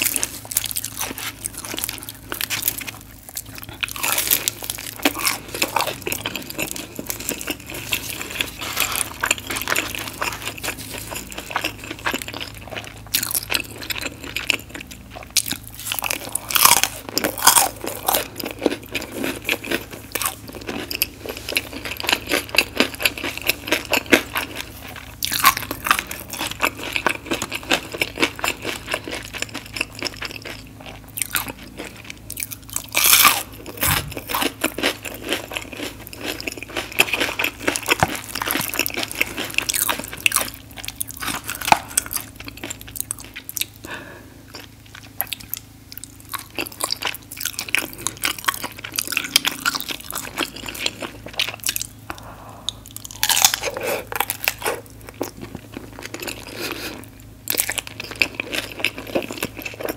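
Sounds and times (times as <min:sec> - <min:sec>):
crunchy chips being chewed: 0:00.0 - 0:59.9.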